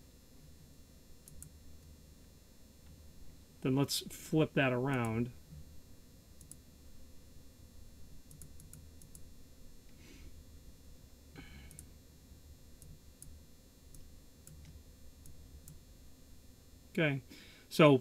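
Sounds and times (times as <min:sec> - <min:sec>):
low steady hum: 0:00.0 - 0:18.0
computer mouse clicks: 0:01.2 - 0:01.6, 0:06.4 - 0:06.6, 0:08.3 - 0:09.3, 0:11.7 - 0:11.9, 0:12.8 - 0:15.8.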